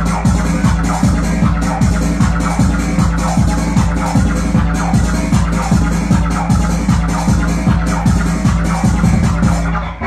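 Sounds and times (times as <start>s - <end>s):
fast kick-drum beat: 0.0s - 9.8s
droning bass line: 0.0s - 10.0s.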